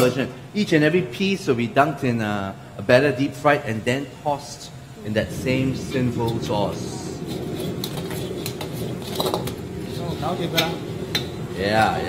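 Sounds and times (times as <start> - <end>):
steady low rush: 4.2 - 12.0
metal ladle scraping a wok: 6.2 - 11.4.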